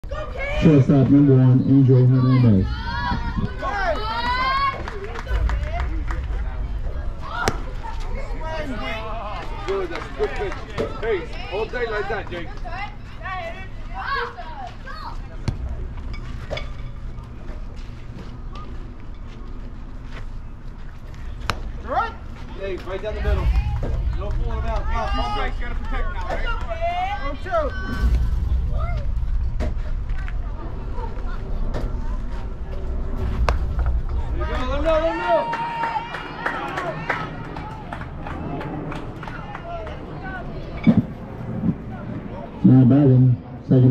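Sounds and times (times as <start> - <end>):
spectators talking: 0.0 - 43.9
wind rumble on microphone: 2.6 - 3.8, 37.4 - 43.9
wind rumbling on microphone: 2.6 - 8.9, 23.1 - 36.4, 37.2 - 43.9.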